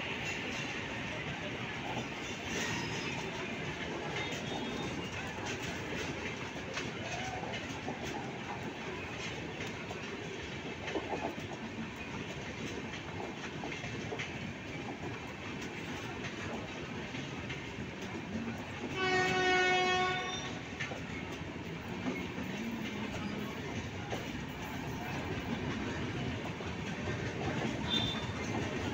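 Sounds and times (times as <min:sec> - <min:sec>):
train rumbling past: 0:00.0 - 0:28.9
wheels clattering over rail joints: 0:00.2 - 0:28.9
train horn: 0:04.1 - 0:05.2, 0:18.8 - 0:20.6, 0:27.8 - 0:28.4.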